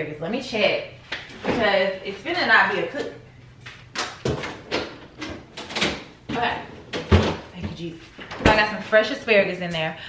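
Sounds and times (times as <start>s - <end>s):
refrigerator door opening: 4.0s - 8.6s
knocks and rattles inside fridge: 4.2s - 8.7s.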